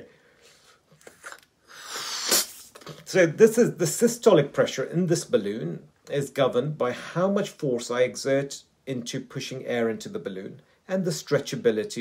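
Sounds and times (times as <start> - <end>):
person blowing up balloon: 1.0 - 3.0.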